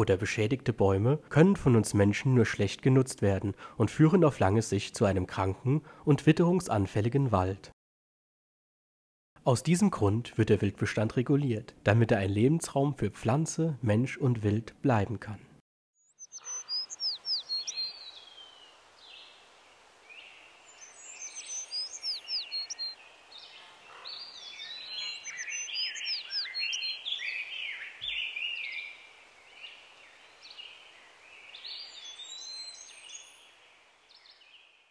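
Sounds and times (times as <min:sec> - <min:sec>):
songbirds singing: 0:16.0 - 0:34.9
faint steady hiss: 0:16.4 - 0:25.3, 0:27.0 - 0:34.9.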